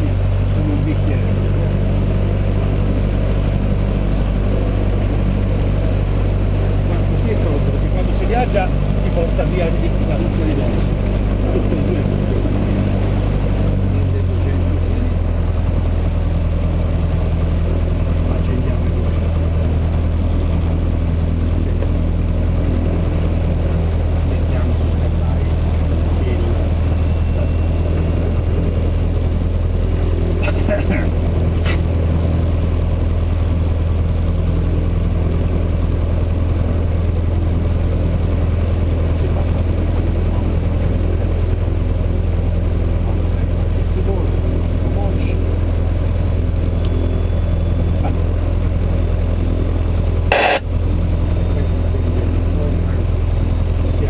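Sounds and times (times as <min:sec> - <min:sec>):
aircraft piston engine idling: 0:00.0 - 0:54.0.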